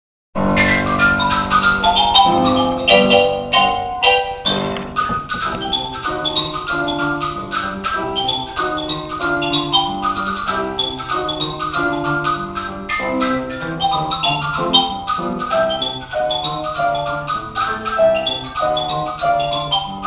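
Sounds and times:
xylophone played with mallets: 0:00.6 - 0:20.0.

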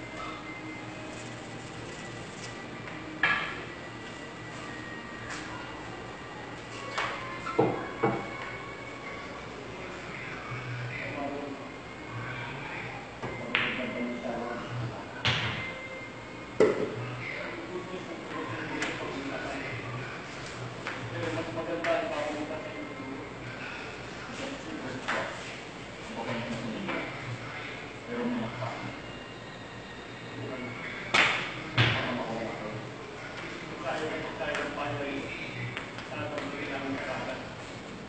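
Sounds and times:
faint steady background noise: 0:00.0 - 0:38.0.

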